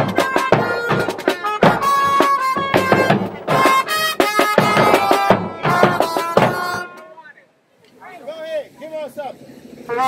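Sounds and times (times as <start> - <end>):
brass band trumpets: 0.0 - 7.4.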